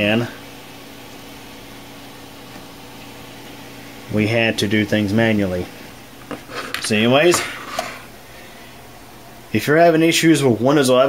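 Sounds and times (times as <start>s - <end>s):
computer cooling fans humming: 0.0s - 11.0s.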